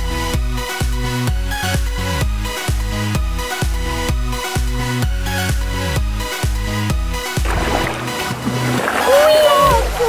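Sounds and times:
water splashing: 7.3 - 10.0.

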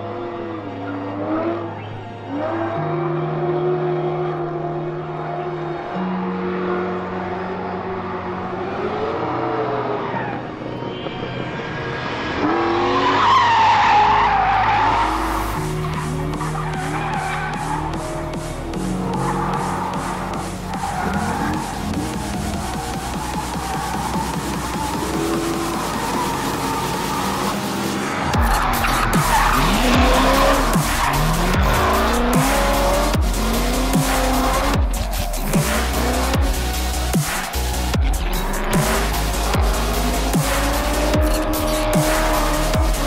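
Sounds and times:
electronic background music: 0.0 - 43.0
car engine revving: 12.0 - 43.0.

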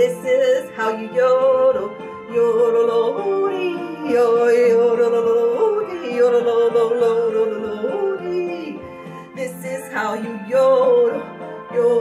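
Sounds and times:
backing music: 0.0 - 12.0.

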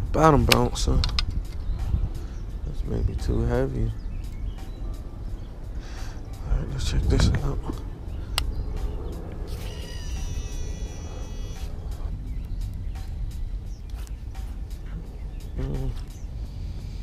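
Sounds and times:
fishing reel spool whining: 9.4 - 11.9.

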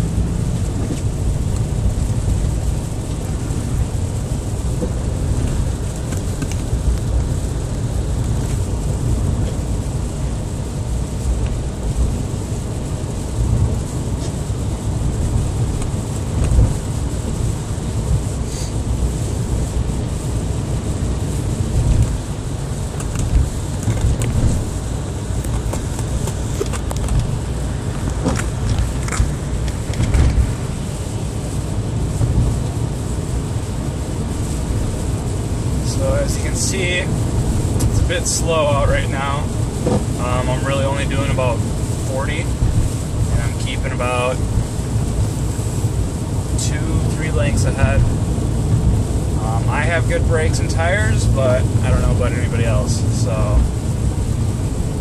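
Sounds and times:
car engine and tyres rumbling: 0.0 - 55.0.

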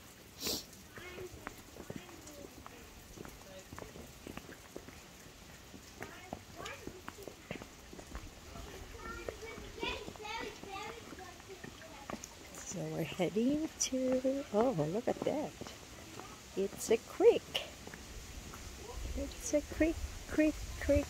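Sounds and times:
footsteps on wet stone: 0.2 - 21.0
faint voices: 0.4 - 21.0.

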